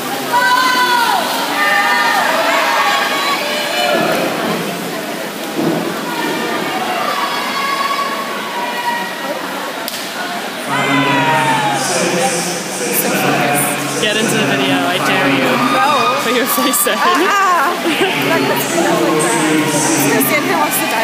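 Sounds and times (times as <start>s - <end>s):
crowd noise: 0.0s - 21.0s
spectators yelling and cheering: 0.0s - 21.0s
water splashing: 0.0s - 21.0s.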